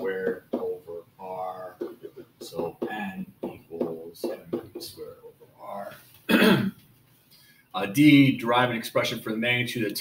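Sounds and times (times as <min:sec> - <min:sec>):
man clearing his throat: 0:06.3 - 0:06.8.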